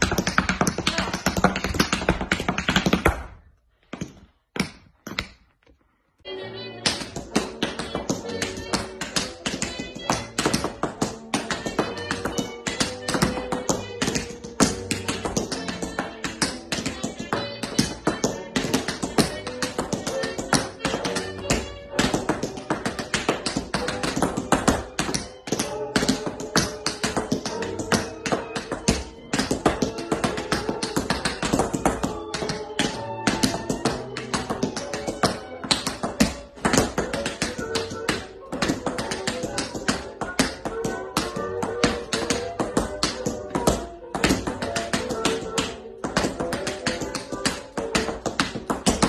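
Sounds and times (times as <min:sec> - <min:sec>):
music: 0:00.0 - 0:03.1, 0:06.1 - 0:49.0
tap shoes on wooden floor: 0:00.0 - 0:05.8, 0:06.6 - 0:49.0.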